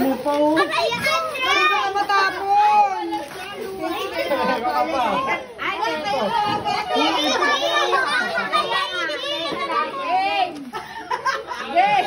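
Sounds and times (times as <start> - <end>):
children talking excitedly: 0.0 - 12.0.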